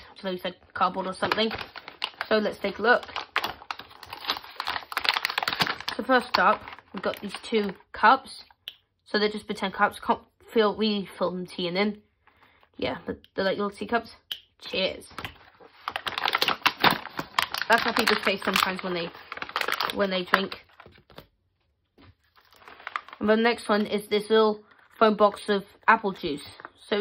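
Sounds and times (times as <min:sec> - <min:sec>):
plastic packaging crackling: 0:00.0 - 0:08.0, 0:14.8 - 0:21.3, 0:22.0 - 0:27.0.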